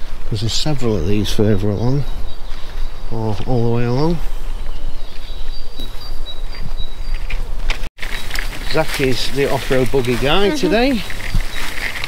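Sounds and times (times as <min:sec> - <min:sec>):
wind rumbling on microphone: 0:00.0 - 0:12.0.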